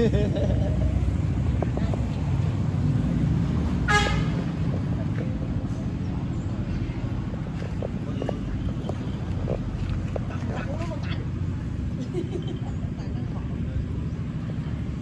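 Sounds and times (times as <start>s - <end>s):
steady low rumble: 0.0s - 15.0s
vehicle horn toot: 3.8s - 4.4s.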